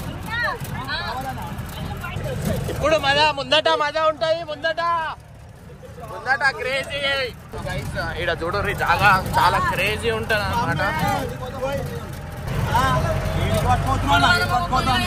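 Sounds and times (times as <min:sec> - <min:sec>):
vehicle driving on rocky track: 0:00.0 - 0:15.0.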